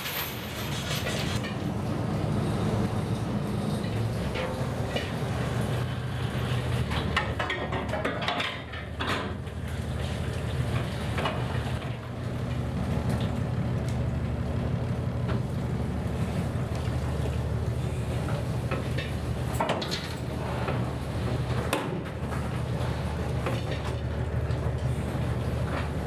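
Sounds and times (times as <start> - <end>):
boat engine droning: 9.0 - 26.0.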